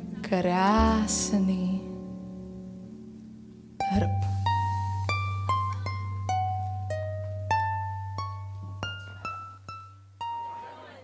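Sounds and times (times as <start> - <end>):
harp plucked notes: 0.0 - 11.0.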